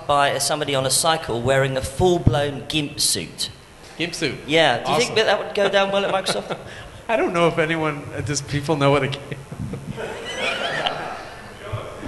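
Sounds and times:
audience laughing: 0:05.2 - 0:06.8, 0:09.3 - 0:11.6.

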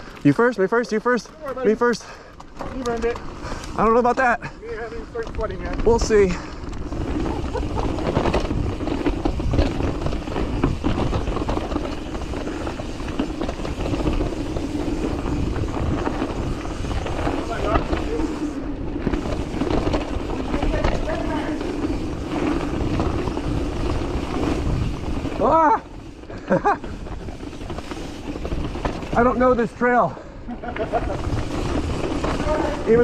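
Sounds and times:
bike rattling and knocking: 0:00.0 - 0:33.0
bike tyres on dirt: 0:00.0 - 0:33.0.

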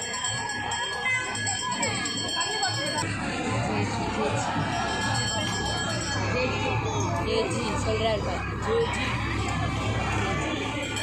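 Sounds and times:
bells jingling: 0:00.0 - 0:03.0, 0:04.4 - 0:07.9, 0:10.7 - 0:11.0
crowd chatter: 0:00.0 - 0:11.0.

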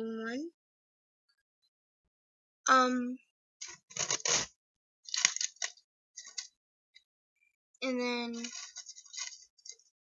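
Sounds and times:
beads clicking and rustling: 0:08.4 - 0:09.8.

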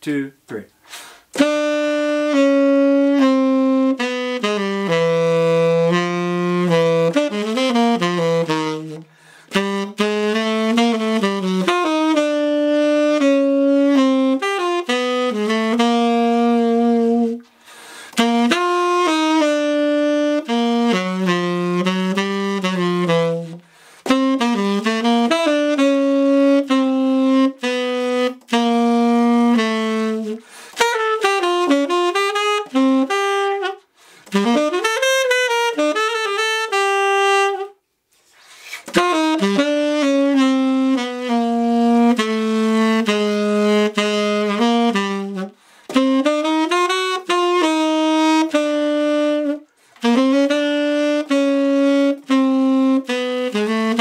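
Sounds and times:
tenor saxophone playing jazz: 0:00.1 - 0:54.0.

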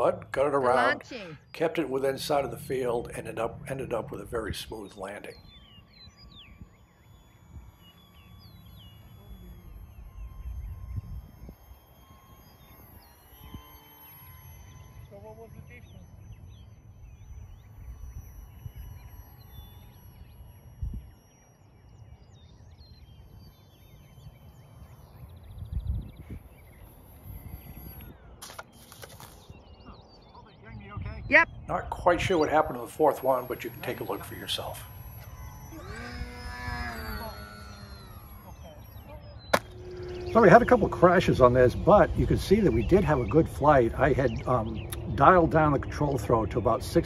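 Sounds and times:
birds chirping: 0:00.0 - 0:47.0
faint electric motor whine: 0:00.0 - 0:47.0
wind gusting on microphone: 0:25.2 - 0:28.4, 0:29.2 - 0:47.0.

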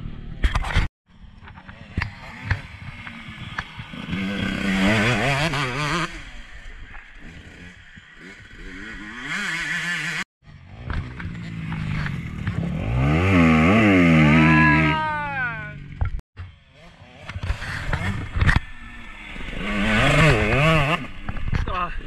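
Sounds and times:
dirt bike engines revving: 0:00.0 - 0:22.0.

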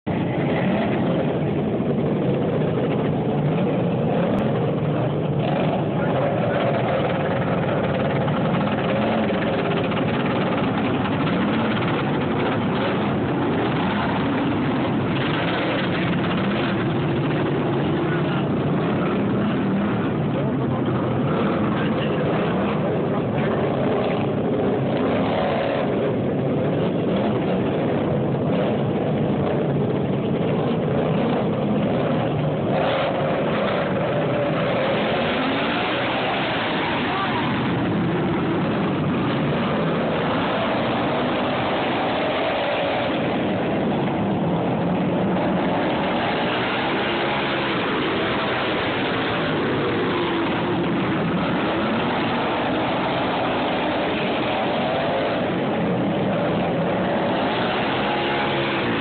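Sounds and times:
racing lawn tractor engines: 0:00.0 - 0:59.0.

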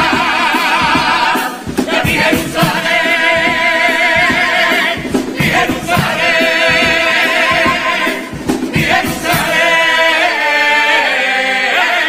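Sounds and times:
male choir singing held chords: 0:00.0 - 0:12.0.

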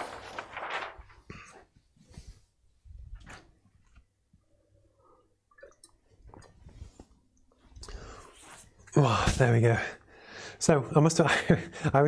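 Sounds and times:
paper sheet rustling: 0:00.0 - 0:02.4.

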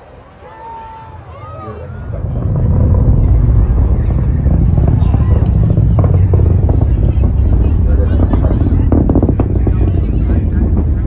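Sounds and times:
rocket engines rumbling: 0:00.0 - 0:11.0.

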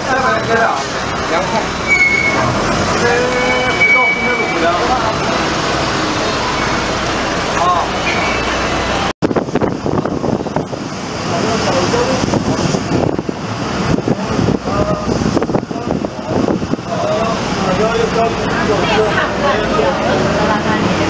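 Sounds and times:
people talking: 0:00.0 - 0:09.1, 0:09.7 - 0:13.2, 0:13.8 - 0:21.0
bus engine running: 0:00.0 - 0:21.0
road noise: 0:00.0 - 0:21.0.

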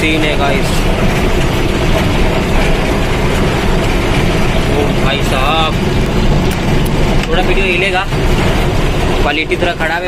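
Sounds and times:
road and tyre noise: 0:00.0 - 0:10.0
truck engine rumble: 0:00.0 - 0:10.0.

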